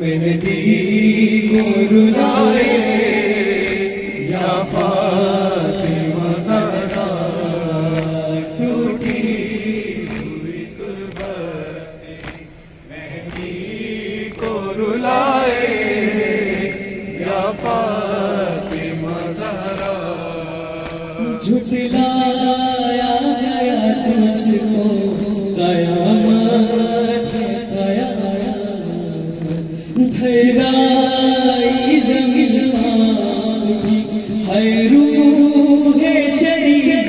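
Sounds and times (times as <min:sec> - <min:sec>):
group of men singing: 0:00.0 - 0:37.0
man chanting into a microphone: 0:00.0 - 0:37.0.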